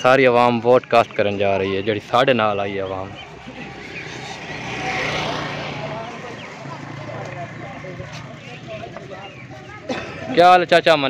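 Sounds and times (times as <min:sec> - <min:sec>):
motor vehicle running: 0:00.0 - 0:11.0.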